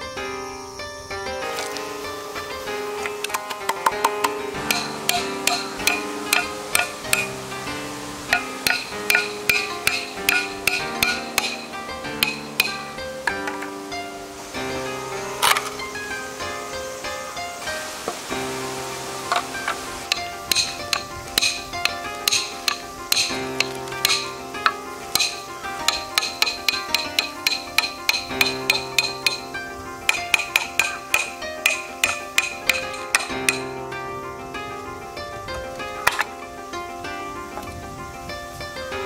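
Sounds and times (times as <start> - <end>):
background music: 0.0 - 39.0
hammer striking blade into bamboo: 3.0 - 7.4, 8.3 - 13.7, 20.1 - 24.3, 25.2 - 29.4, 30.1 - 33.6.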